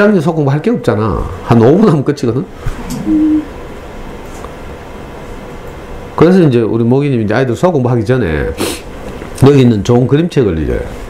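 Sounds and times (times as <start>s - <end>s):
room noise hiss: 0.0s - 11.0s.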